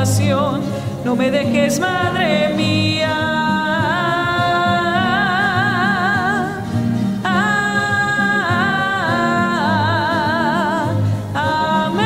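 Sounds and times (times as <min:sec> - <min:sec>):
voice singing with vibrato: 0:00.0 - 0:12.0.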